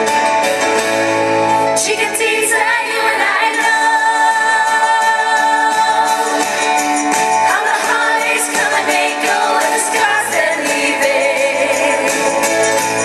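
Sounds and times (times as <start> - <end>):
backing music: 0.0 - 13.0
woman singing into microphone: 1.8 - 6.7, 7.4 - 12.6.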